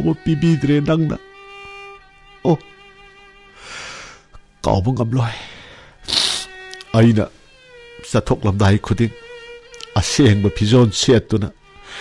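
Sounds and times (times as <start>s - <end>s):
soft background music: 0.0s - 12.0s
breathy gasps: 3.6s - 4.3s.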